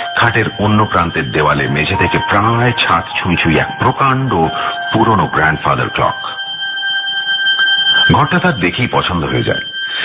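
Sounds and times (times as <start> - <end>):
steady held music tones: 0.0 - 10.0.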